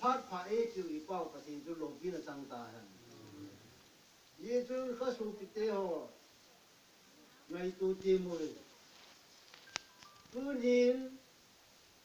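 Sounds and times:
low background noise: 0.0s - 12.0s
man's voice: 10.3s - 11.2s.

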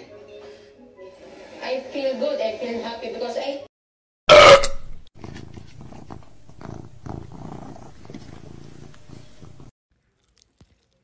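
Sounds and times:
cat purring: 5.2s - 9.7s.

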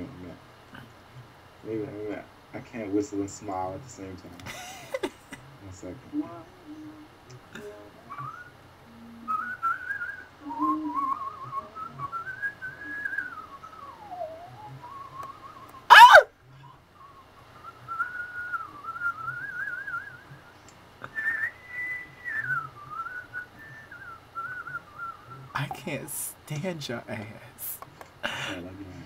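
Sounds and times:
person whistling a tune: 9.3s - 16.2s, 21.0s - 25.1s
loud shrill burst: 15.9s - 16.3s.

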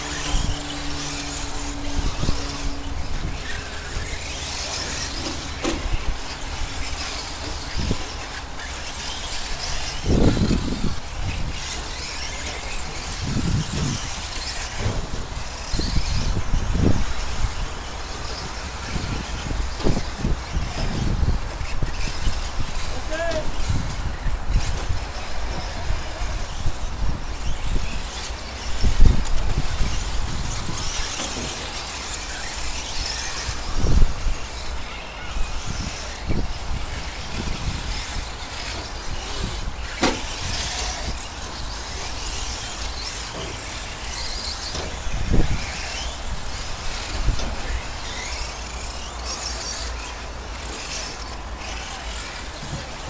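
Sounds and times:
rc trucks motors whirring: 0.0s - 53.0s.

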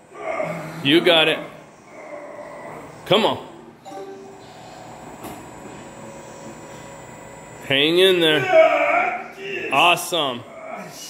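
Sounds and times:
electric motor humming: 4.3s - 8.3s.

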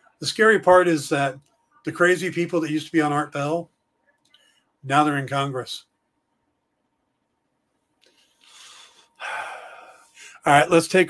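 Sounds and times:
man breathing: 8.0s - 10.4s.

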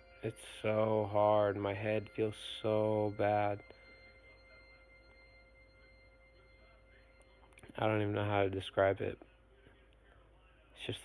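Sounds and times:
faint electrical hum and whine: 0.0s - 11.0s.

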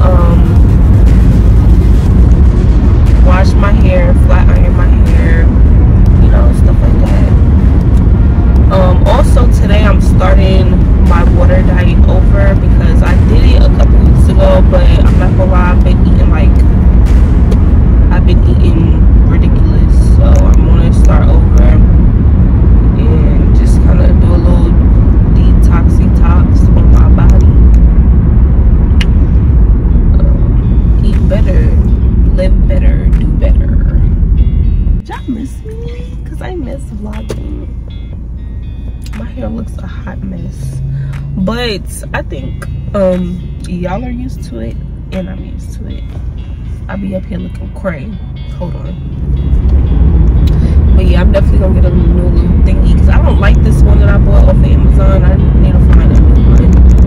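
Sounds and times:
woman talking: 0.0s - 0.7s, 3.0s - 5.6s, 6.2s - 7.4s, 8.6s - 16.7s, 18.1s - 21.9s, 23.0s - 27.5s, 30.0s - 34.1s, 35.0s - 37.7s, 39.0s - 46.0s, 46.8s - 49.0s, 50.8s - 56.8s
car road rumble inside cabin: 0.0s - 57.0s.

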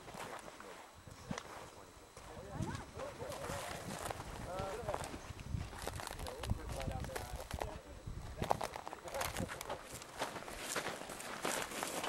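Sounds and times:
people talking: 0.0s - 5.2s, 5.8s - 9.9s
footsteps: 0.0s - 12.0s
rustling through dry brush: 3.4s - 7.7s, 8.3s - 12.0s.

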